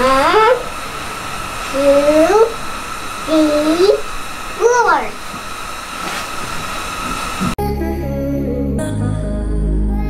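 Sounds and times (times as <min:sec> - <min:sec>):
constant thin whine: 0:00.0 - 0:07.6
steady hissing noise: 0:00.0 - 0:07.6.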